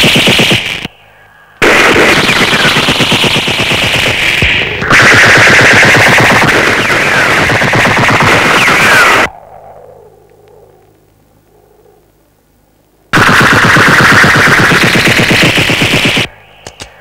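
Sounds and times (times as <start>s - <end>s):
machine-gun fire: 0.0s - 0.9s, 1.6s - 9.3s, 13.1s - 16.3s.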